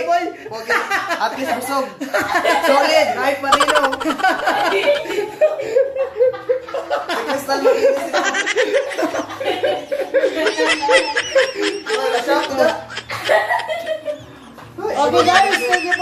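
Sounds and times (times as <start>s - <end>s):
people laughing: 0.5s - 16.0s
people chattering: 0.6s - 16.0s.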